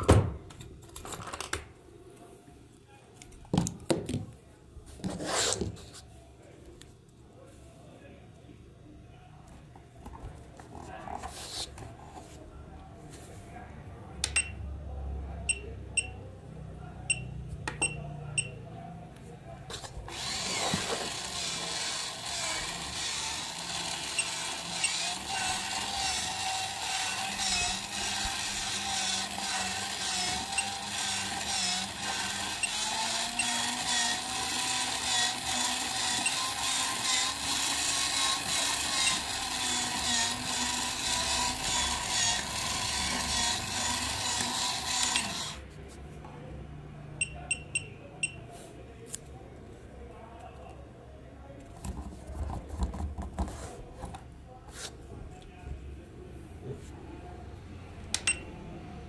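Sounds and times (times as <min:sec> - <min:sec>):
small electric motor whirring: 0:20.1 - 0:45.6.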